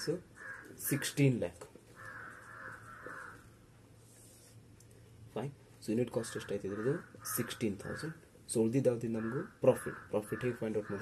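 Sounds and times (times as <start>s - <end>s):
marker scraping on whiteboard: 4.0s - 4.6s.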